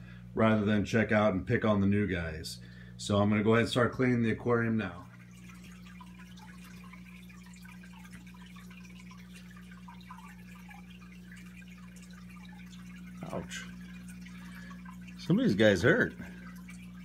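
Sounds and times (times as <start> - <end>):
aquarium water dripping and trickling: 0.0 - 17.0
low electrical hum: 0.0 - 17.0
small water splashes: 4.9 - 17.0.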